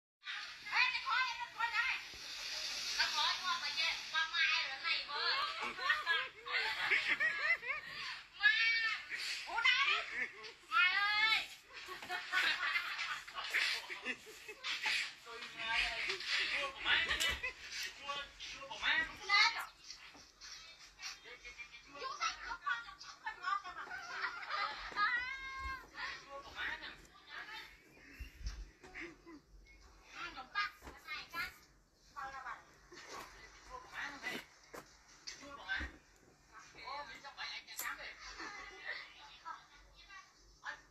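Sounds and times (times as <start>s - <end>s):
breathy hissing: 2.0s - 4.2s.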